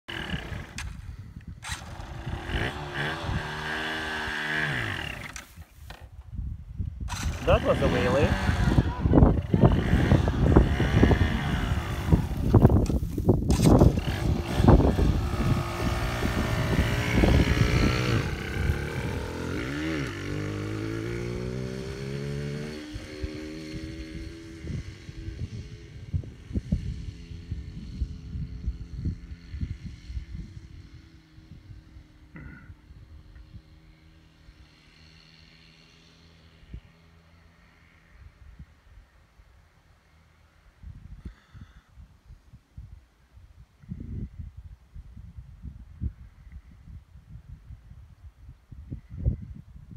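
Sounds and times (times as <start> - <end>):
motorcycle engine revving: 0.0 - 6.2, 6.9 - 38.3
wind buffeting microphone: 0.1 - 32.2, 40.7 - 49.9.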